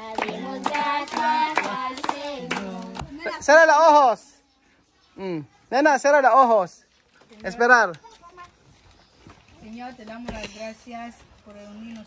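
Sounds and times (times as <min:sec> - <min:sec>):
group clapping hands: 0:00.0 - 0:03.2
children singing: 0:00.0 - 0:03.4.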